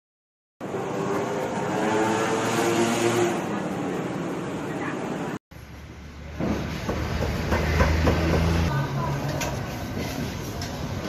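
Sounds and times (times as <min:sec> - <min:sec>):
traffic and street noise: 0:00.6 - 0:11.0.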